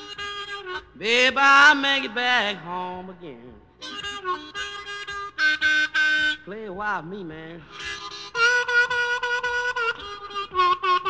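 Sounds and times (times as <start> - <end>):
blues harmonica chords: 0.0 - 11.0.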